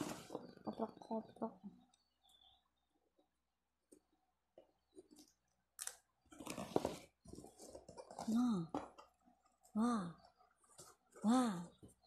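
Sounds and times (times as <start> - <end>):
cardboard and paper rustling: 0.0 - 0.7, 6.3 - 9.2.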